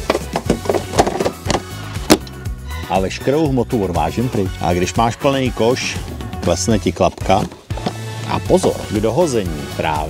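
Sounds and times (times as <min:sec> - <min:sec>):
plastic bag knocking and rattling: 0:00.0 - 0:02.2, 0:06.4 - 0:08.0
background music: 0:00.0 - 0:10.0.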